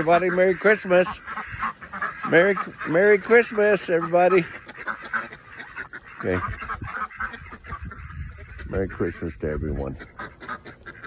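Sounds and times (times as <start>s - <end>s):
ducks quacking: 0.0s - 11.0s.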